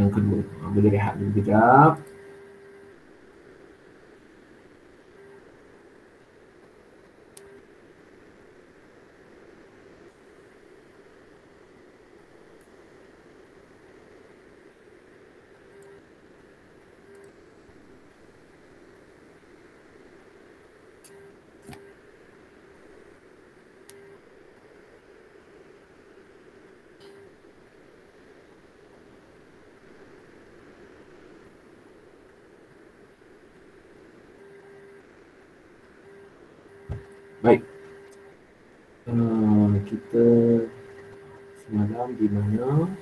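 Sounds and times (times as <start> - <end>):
open microphone hiss: 0.0 - 43.0
faint clicks: 17.1 - 17.4, 36.7 - 38.3.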